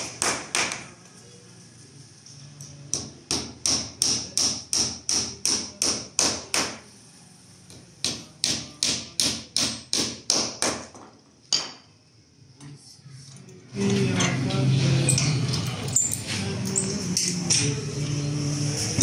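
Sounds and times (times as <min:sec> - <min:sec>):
hammer driving nails into wood: 0:08.0 - 0:11.1.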